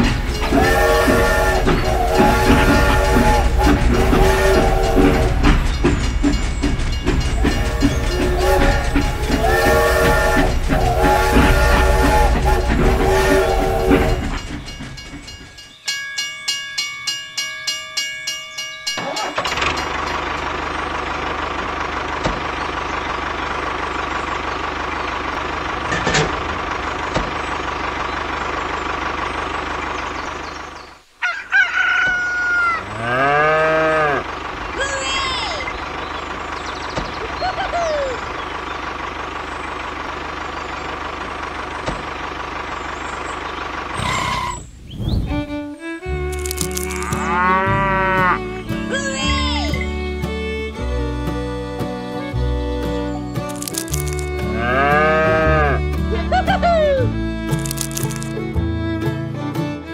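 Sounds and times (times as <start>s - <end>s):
farm animal calls: 0.0s - 14.9s, 27.5s - 39.0s, 45.8s - 50.1s, 53.0s - 58.3s
toy train whistle and running: 0.0s - 15.7s, 44.0s - 44.6s, 46.2s - 49.8s, 53.4s - 55.5s, 57.6s - 58.3s
rooster crowing: 31.2s - 34.2s.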